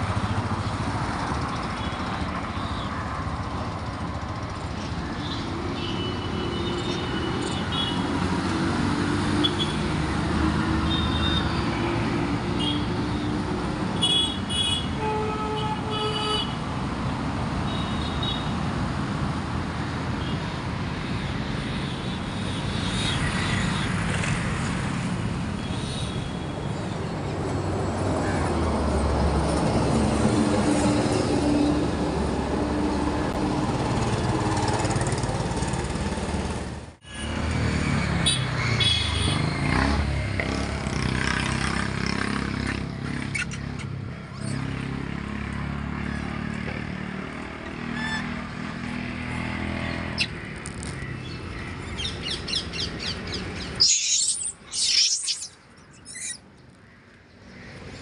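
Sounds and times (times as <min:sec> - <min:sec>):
vehicles passing on road: 0:00.0 - 0:58.0
high-pitched chirps: 0:53.7 - 0:56.4.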